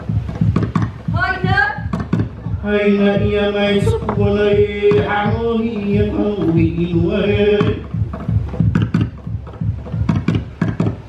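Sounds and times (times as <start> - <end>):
gourd drum deep thumps: 0.0 - 11.0.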